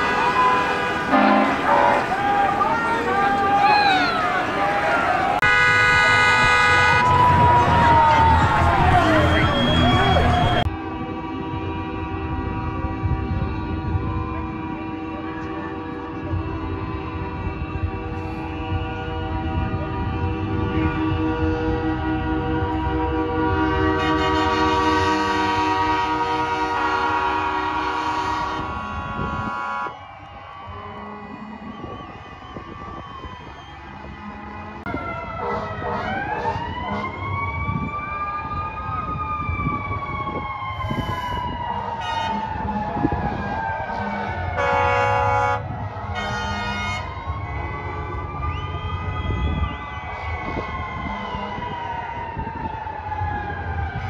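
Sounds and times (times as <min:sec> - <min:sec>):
horn blast and toots: 0:00.0 - 0:30.0, 0:30.7 - 0:32.2, 0:33.8 - 0:37.6, 0:40.8 - 0:48.4, 0:50.5 - 0:51.8
fire engine siren wailing: 0:00.0 - 0:54.0.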